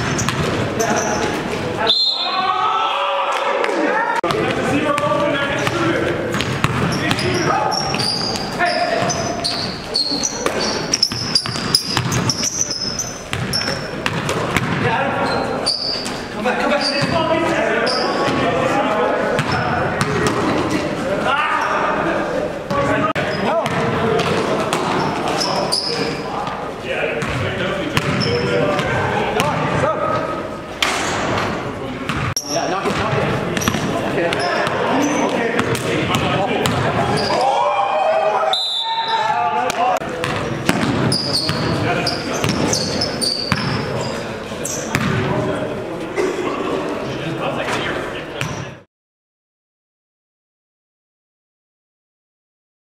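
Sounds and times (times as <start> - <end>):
basketball bouncing on gym court: 0.0 - 1.1, 4.2 - 15.4, 23.5 - 25.0, 27.2 - 29.8, 32.1 - 37.3, 40.2 - 43.9, 44.9 - 45.3
indistinct voices echoing: 0.0 - 48.8.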